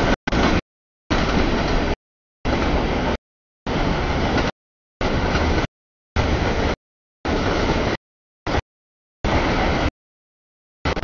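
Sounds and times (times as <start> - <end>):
train wheels rumbling on rail: 0.0 - 8.6, 9.3 - 9.9.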